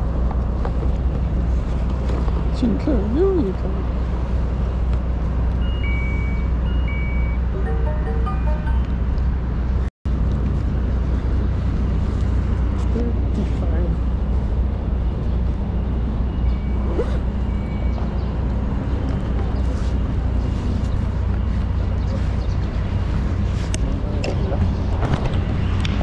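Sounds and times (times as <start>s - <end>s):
low street rumble: 0.0s - 26.0s
two-pitch electronic beeps: 5.6s - 9.1s.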